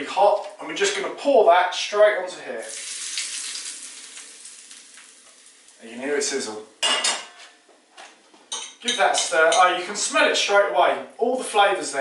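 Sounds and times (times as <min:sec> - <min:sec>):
hot oil sizzling: 0:02.6 - 0:06.4.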